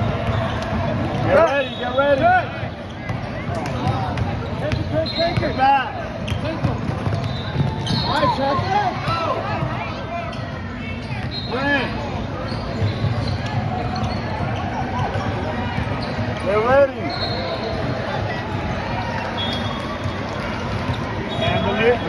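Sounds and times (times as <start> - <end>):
sneakers squeaking: 0.0 - 22.0.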